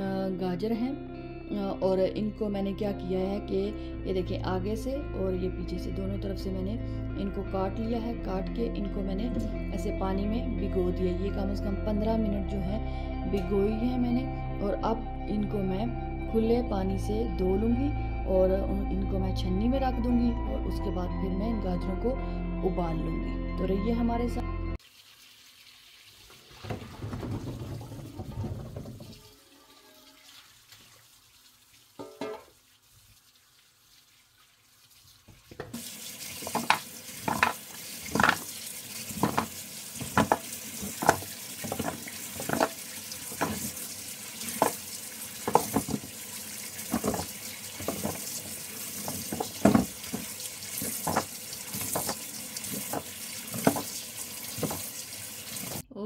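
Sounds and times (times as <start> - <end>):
tap running into steel sink: 32.0 - 32.5, 35.5 - 55.8.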